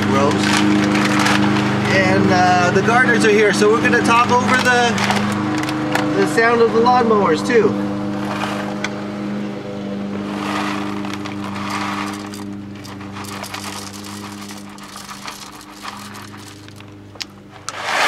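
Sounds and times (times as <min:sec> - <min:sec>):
lawnmower engines droning: 0:00.0 - 0:18.0
coffee bag crinkling: 0:00.2 - 0:01.6, 0:10.3 - 0:17.0
coffee beans pouring into grinder: 0:10.3 - 0:16.9.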